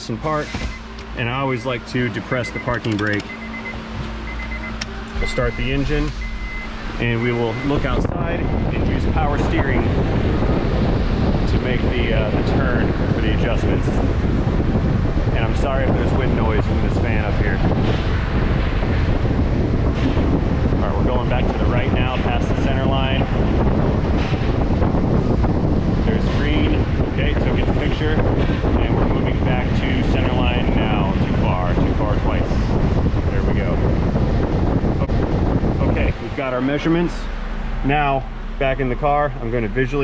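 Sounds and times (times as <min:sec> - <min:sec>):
wind buffeting microphone: 0:05.0 - 0:40.0.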